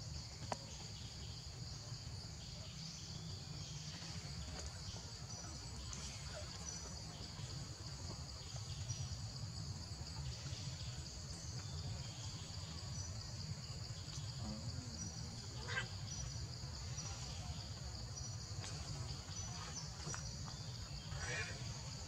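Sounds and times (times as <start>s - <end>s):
insects chirping: 0.0s - 22.0s.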